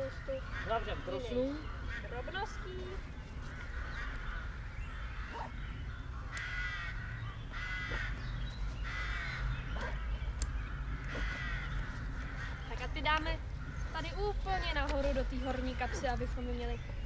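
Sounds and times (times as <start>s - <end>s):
crow cawing: 0.0s - 14.6s.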